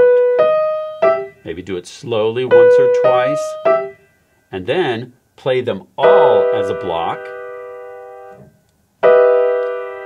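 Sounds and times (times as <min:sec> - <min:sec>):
piano chord: 0:00.0 - 0:01.6, 0:02.5 - 0:04.0, 0:06.0 - 0:10.0.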